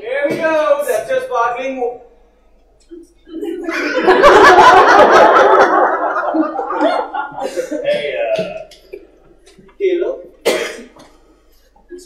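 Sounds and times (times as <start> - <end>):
person coughing: 7.4 - 8.6, 10.4 - 11.2.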